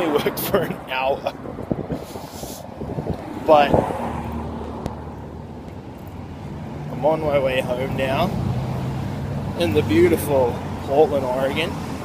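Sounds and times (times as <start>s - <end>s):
distant street traffic rumble: 0.0s - 12.0s
wind on microphone: 1.2s - 5.2s.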